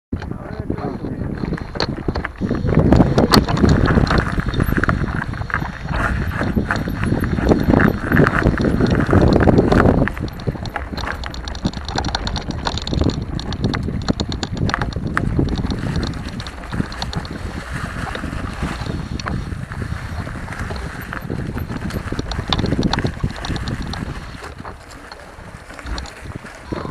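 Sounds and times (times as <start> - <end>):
low wind rumble: 0.1 - 26.9
bike rattling over rocky trail: 0.2 - 26.9.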